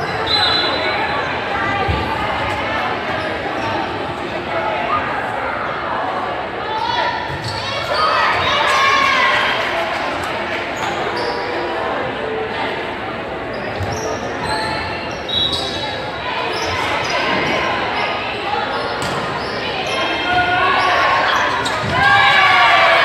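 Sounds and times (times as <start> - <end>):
players and spectators voices: 0.0 - 23.0
sneakers squeaking: 6.8 - 9.1, 10.7 - 11.9, 13.4 - 22.6.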